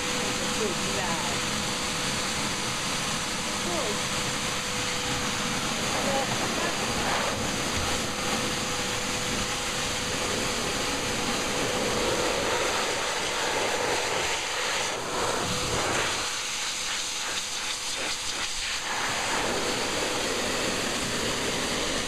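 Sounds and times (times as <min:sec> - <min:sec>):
pet dryer blowing air: 0:00.0 - 0:22.0.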